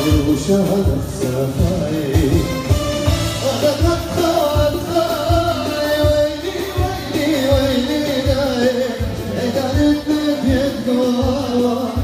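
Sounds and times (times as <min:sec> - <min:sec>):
low drum beat: 0:00.0 - 0:12.0.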